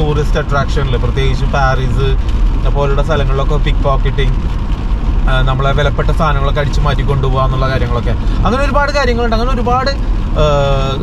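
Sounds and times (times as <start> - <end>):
man talking: 0.0 - 4.4, 5.3 - 11.0
road rumble inside car: 0.0 - 11.0.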